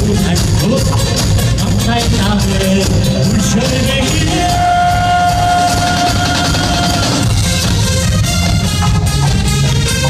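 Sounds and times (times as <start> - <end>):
drum kit: 0.0 - 10.0.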